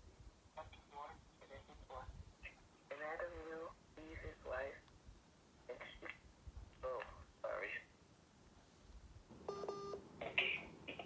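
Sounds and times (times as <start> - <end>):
electronic beep over telephone line: 9.5 - 10.0.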